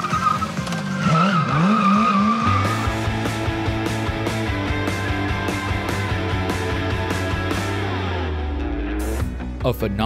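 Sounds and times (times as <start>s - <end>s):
tyre squealing: 0.0s - 2.9s
motorcycle engine revving: 0.0s - 8.3s
music with steady beat: 2.6s - 10.0s.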